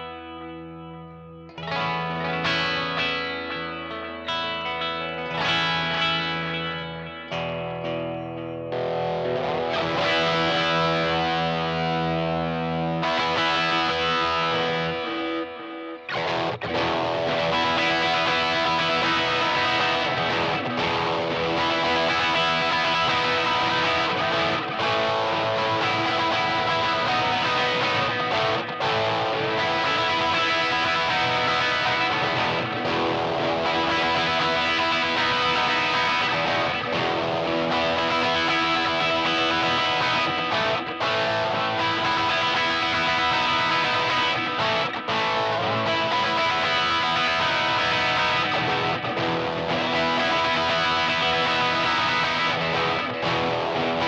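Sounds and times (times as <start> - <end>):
electric guitar playing: 0.0 - 54.0.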